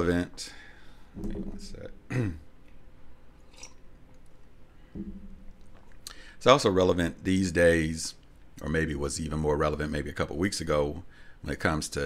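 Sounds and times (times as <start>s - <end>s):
man clearing his throat: 2.1s - 2.5s.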